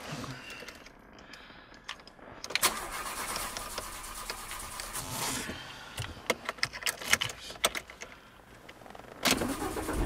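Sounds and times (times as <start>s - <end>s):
car engine cranking and running: 1.9s - 5.4s, 6.4s - 10.0s.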